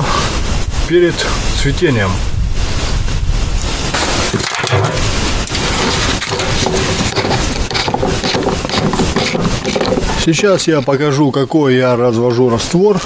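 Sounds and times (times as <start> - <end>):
loud steady rushing noise: 2.6 - 10.3
plastic threads scraping: 3.9 - 10.9.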